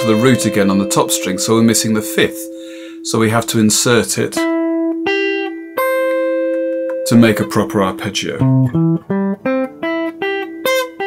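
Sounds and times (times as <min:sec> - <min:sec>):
unplugged electric guitar notes: 0:00.0 - 0:11.0.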